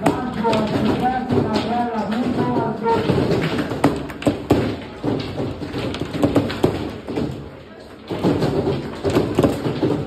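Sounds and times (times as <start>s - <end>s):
sharp knocks: 0.0s - 10.0s
table football ball clacking: 0.0s - 10.0s.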